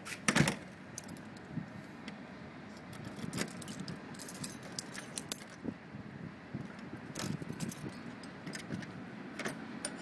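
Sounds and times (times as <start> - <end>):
keys jangling at a door lock: 3.0 - 5.6, 7.1 - 9.6.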